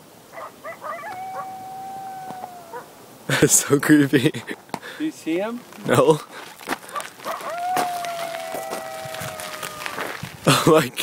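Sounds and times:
coyotes yipping: 0:00.3 - 0:03.0, 0:06.8 - 0:10.4
coyote howling: 0:00.4 - 0:03.0, 0:06.9 - 0:10.4.

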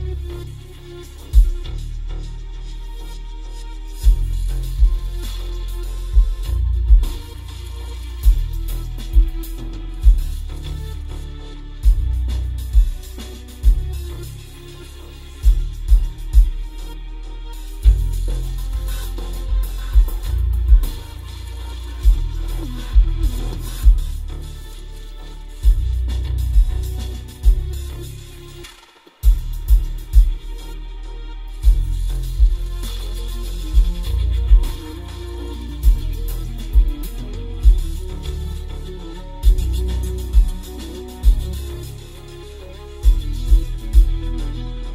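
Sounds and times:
bass-heavy music through car speakers: 0:00.0 - 0:44.9.

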